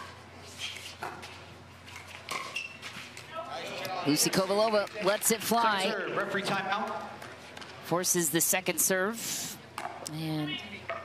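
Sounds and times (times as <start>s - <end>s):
man speaking commentary: 3.4s - 7.2s, 7.8s - 9.4s.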